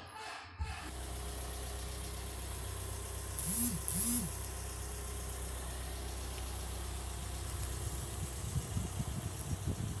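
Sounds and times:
vehicle engine idling: 0:00.8 - 0:10.0.

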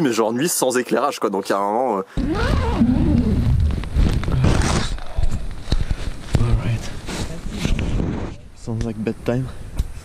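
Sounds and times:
camera handling rumble: 0:02.2 - 0:06.6.

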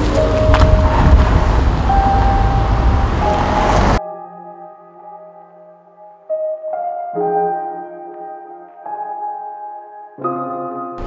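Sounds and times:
car engine and tyres rumbling: 0:00.0 - 0:04.0.

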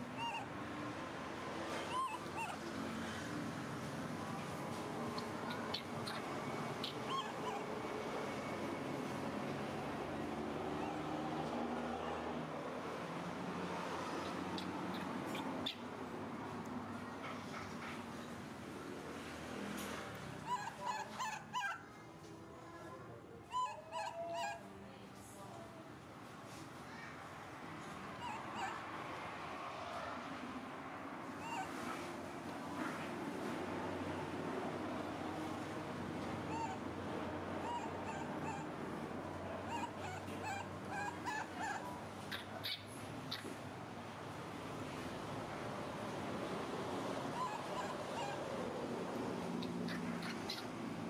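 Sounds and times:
animal whimpering: 0:00.0 - 0:00.5, 0:01.7 - 0:02.6, 0:05.2 - 0:07.8, 0:20.4 - 0:21.8, 0:23.5 - 0:24.6, 0:28.2 - 0:28.8, 0:31.4 - 0:31.7, 0:36.5 - 0:36.8, 0:37.6 - 0:38.8, 0:39.6 - 0:42.8, 0:47.4 - 0:48.6
baby monkey squeaking: 0:00.0 - 0:00.5, 0:01.8 - 0:02.6, 0:05.1 - 0:07.8, 0:14.2 - 0:15.9, 0:20.4 - 0:21.8, 0:23.5 - 0:24.6, 0:28.2 - 0:28.8, 0:31.4 - 0:31.7, 0:36.5 - 0:36.8, 0:37.6 - 0:38.7, 0:39.6 - 0:43.6, 0:47.4 - 0:48.4, 0:49.6 - 0:50.8.

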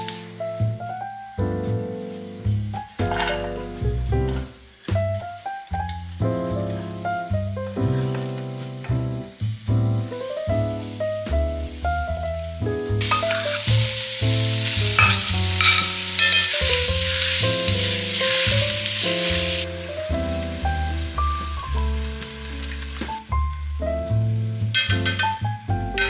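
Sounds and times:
background music with bass: 0:00.0 - 0:26.0
vegetables sizzling in oil: 0:02.0 - 0:06.4, 0:07.0 - 0:26.0.

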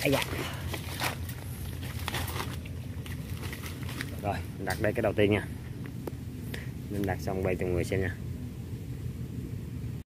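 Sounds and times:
dry leaves rustling and crackling: 0:00.0 - 0:05.0.

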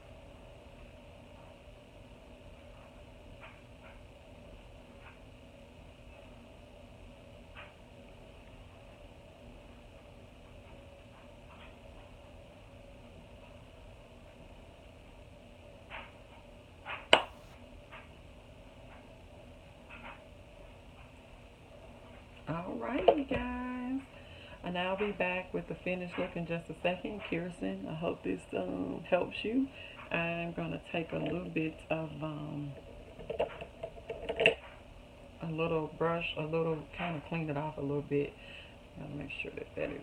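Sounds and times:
low steady hum: 0:00.0 - 0:40.0.

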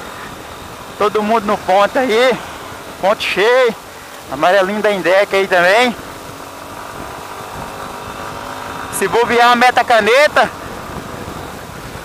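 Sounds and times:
motorcycle engine running: 0:00.0 - 0:12.0
wind and road noise: 0:00.0 - 0:12.0.

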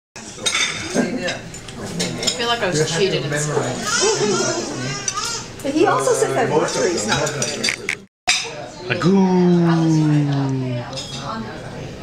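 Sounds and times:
dishes and cutlery clinking: 0:00.2 - 0:02.6, 0:06.6 - 0:08.6
people talking: 0:08.8 - 0:12.0.

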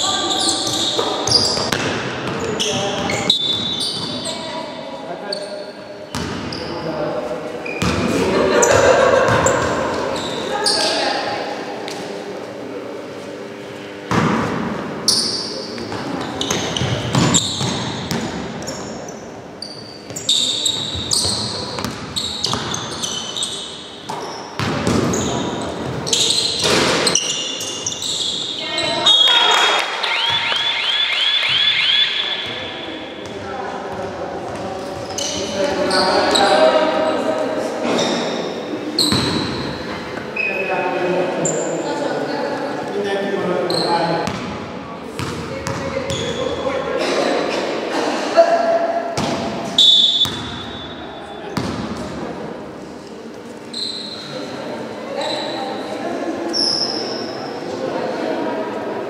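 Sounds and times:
sneakers squeaking: 0:00.0 - 0:47.8, 0:48.6 - 0:57.8
basketball bouncing on wooden floor: 0:06.1 - 0:06.5, 0:24.1 - 0:25.4, 0:44.2 - 0:44.5, 0:45.2 - 0:46.2, 0:50.2 - 0:50.6.

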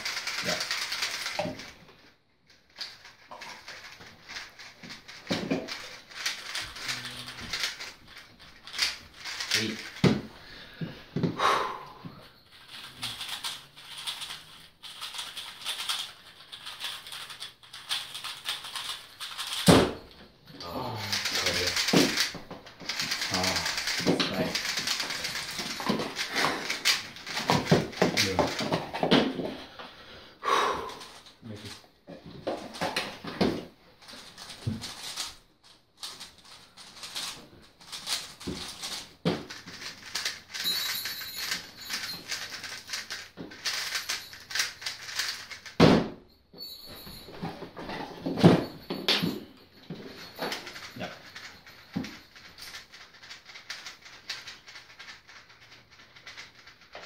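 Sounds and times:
puzzle cubes clicking and rattling: 0:00.0 - 0:01.8, 0:02.6 - 0:10.5, 0:12.5 - 0:20.0, 0:20.6 - 0:29.5, 0:30.9 - 0:33.2, 0:34.0 - 0:45.8, 0:50.1 - 0:57.0.

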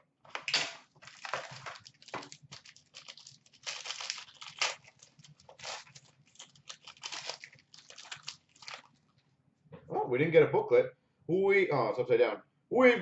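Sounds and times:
foil wrapper crinkling: 0:00.9 - 0:09.1.

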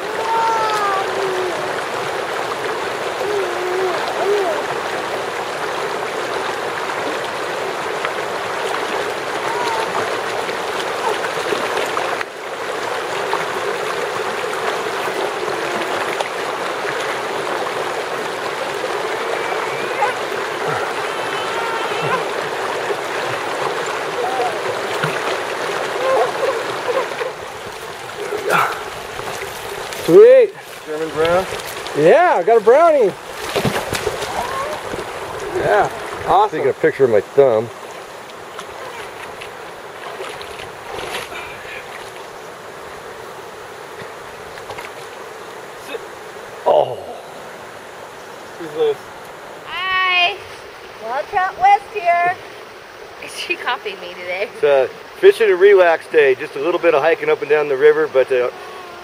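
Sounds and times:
river flowing over rocks: 0:00.0 - 0:59.0.

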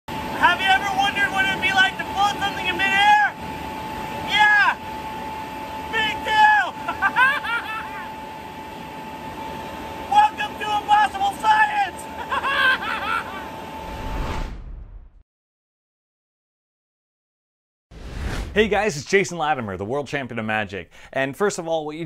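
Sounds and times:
steady high whine: 0:00.1 - 0:14.8
man yelling and whooping: 0:00.4 - 0:03.4, 0:04.2 - 0:04.8, 0:05.9 - 0:08.2, 0:10.1 - 0:12.4.

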